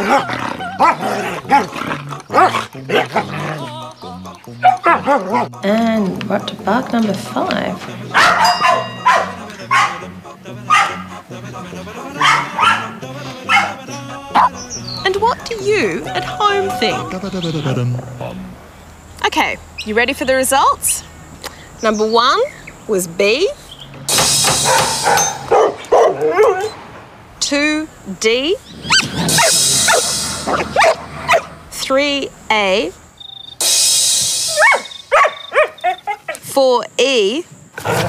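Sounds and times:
dog barking: 0.1s - 1.7s, 2.3s - 3.3s, 4.6s - 5.5s, 8.1s - 10.1s, 10.7s - 11.0s, 12.2s - 13.8s, 24.6s - 26.8s, 28.9s - 31.5s, 34.6s - 36.4s
low background music: 0.1s - 18.6s.

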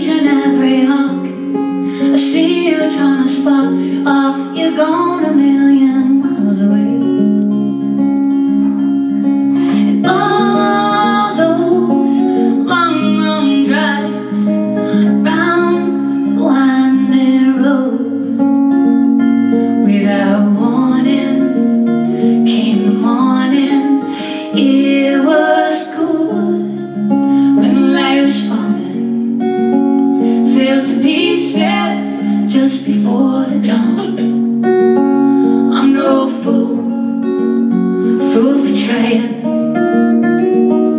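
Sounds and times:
woman singing: 0.0s - 7.2s, 9.6s - 29.4s, 30.0s - 34.6s, 35.5s - 39.9s
acoustic guitar strumming: 0.0s - 40.9s.

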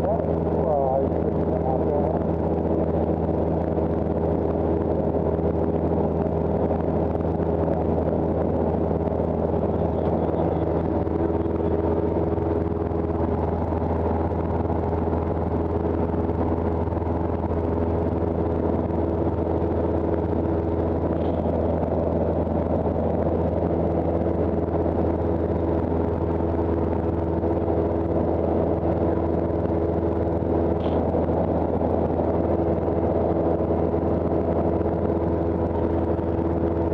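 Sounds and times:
small plane engine droning: 0.0s - 36.9s.

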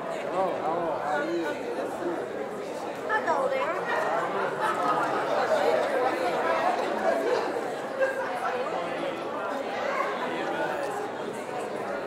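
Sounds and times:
hubbub of many voices talking: 0.0s - 12.0s.

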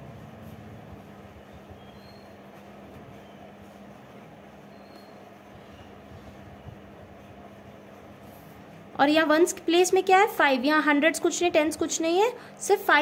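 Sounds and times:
continuous low hum: 0.0s - 13.0s.

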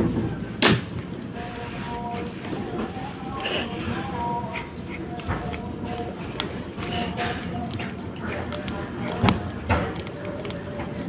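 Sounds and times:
kittens chewing fish: 0.0s - 11.0s.

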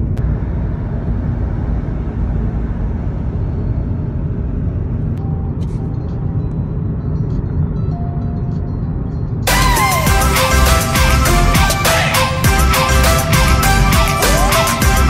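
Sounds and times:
car road rumble: 0.0s - 7.7s
background music: 5.2s - 15.0s.

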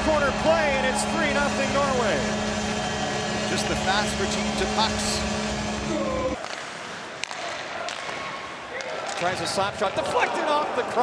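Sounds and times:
hockey stick or puck clacks: 6.4s - 10.2s.

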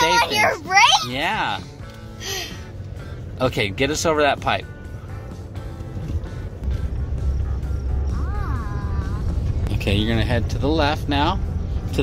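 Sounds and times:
pickup truck engine rumble: 0.0s - 12.0s.

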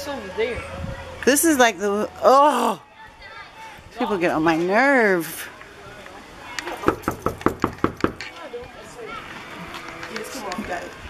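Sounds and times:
knocking on a door: 6.8s - 8.3s.

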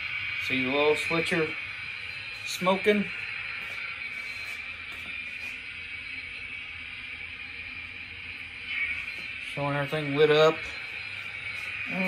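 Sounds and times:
low hum: 0.0s - 12.0s
model trains hissing: 0.0s - 12.0s.

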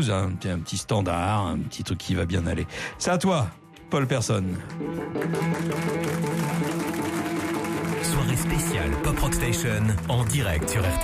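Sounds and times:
bass guitar: 4.6s - 11.0s
electric guitar blues riff: 4.7s - 11.0s.

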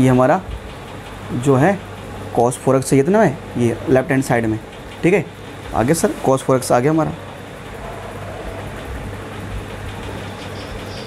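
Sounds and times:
low hum: 3.2s - 11.0s.

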